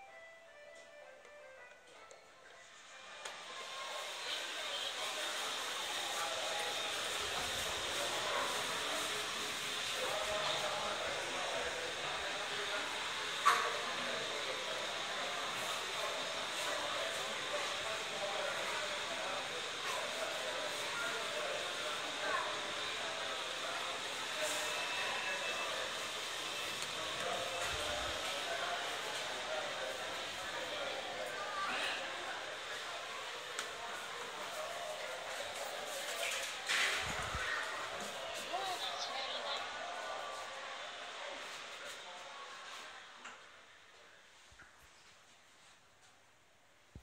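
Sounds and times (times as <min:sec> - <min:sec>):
faint voices: 0:00.0 - 0:44.9
store background noise: 0:00.0 - 0:47.0.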